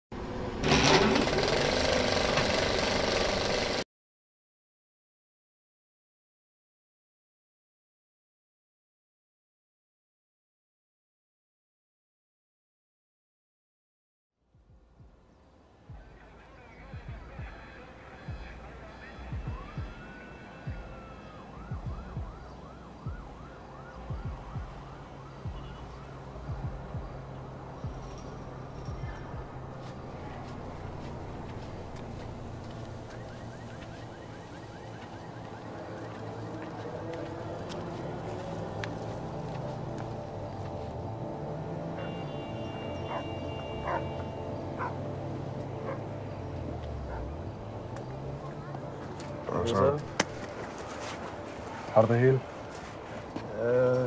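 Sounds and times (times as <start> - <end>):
film projector clattering: 0.6 - 3.8
emergency vehicle siren: 17.0 - 52.5
low thumps: 21.7 - 23.4, 24.0 - 28.2.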